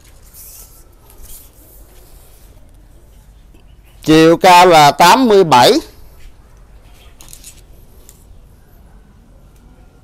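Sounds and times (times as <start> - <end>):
rustling and scraping: 0.0 - 3.8, 6.0 - 8.4.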